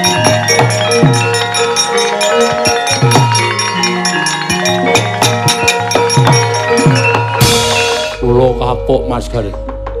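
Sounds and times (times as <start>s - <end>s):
metallophones ringing: 0.0s - 10.0s.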